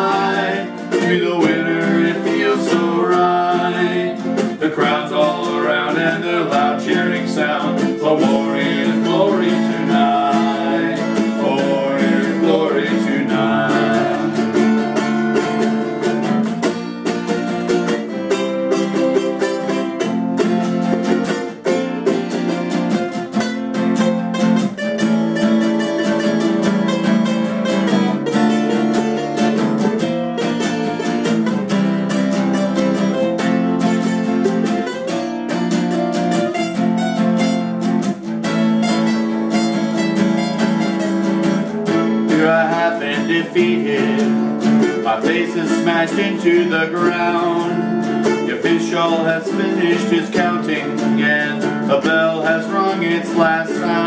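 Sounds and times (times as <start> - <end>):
acoustic guitar strumming: 0.0 - 54.0
ukulele strumming: 0.0 - 54.0.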